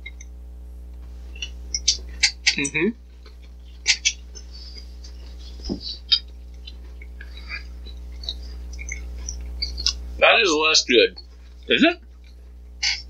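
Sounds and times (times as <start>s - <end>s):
low electrical hum: 0.0s - 13.0s
people chewing: 1.3s - 13.0s.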